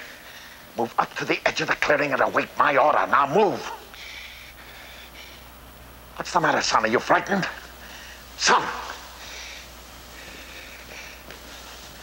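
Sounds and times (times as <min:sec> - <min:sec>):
faint low hum and hiss: 0:00.0 - 0:12.0.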